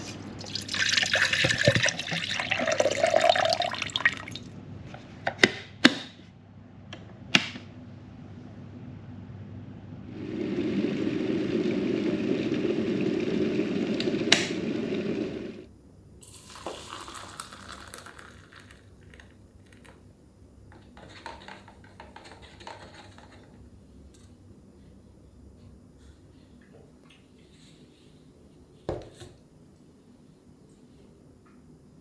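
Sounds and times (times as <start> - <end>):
water heating in kettle: 0.0 - 4.5, 10.1 - 19.9.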